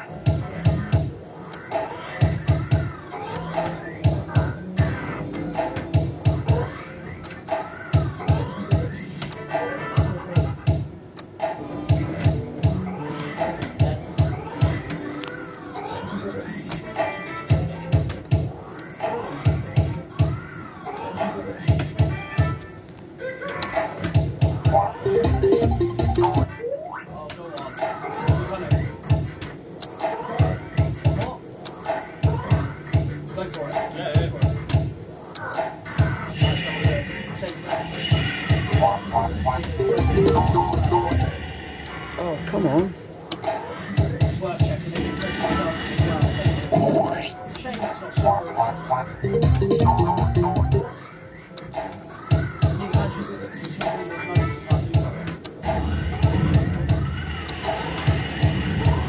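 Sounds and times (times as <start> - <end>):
fruit machine electronic music: 24.7 - 27.0, 38.7 - 41.3, 48.3 - 50.9
rising and falling electronic tones: 25.0 - 26.5, 49.2 - 50.9
low pulsing beat: 25.1 - 26.5, 49.2 - 50.8.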